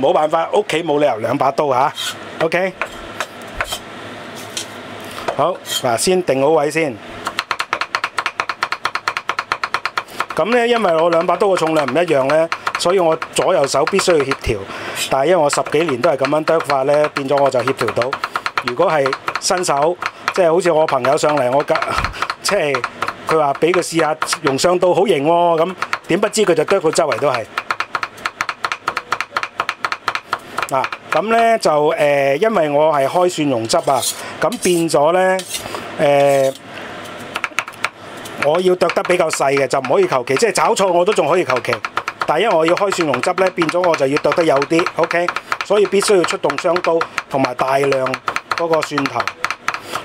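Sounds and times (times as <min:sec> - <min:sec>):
cleavers chopping on board: 0:07.2 - 0:14.5, 0:15.2 - 0:31.5, 0:37.3 - 0:50.0.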